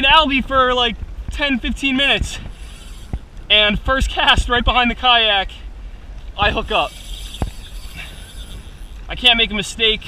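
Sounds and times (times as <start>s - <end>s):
choppy water: 5.7s - 10.0s.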